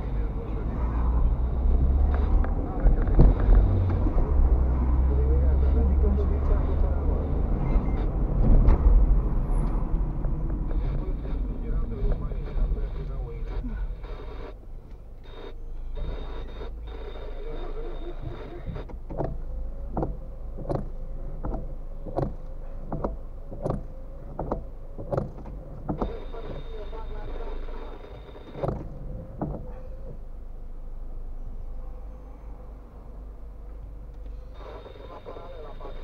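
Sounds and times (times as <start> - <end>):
windscreen wiper knocking: 18.9 - 26.2, 28.6 - 30.2.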